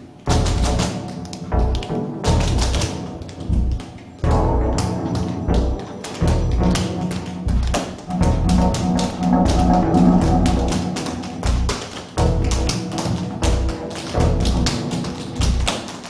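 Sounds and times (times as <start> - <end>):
tap shoes on stage floor: 0.2 - 16.0
music with low bass line: 0.3 - 0.9, 1.5 - 2.9, 3.5 - 15.7.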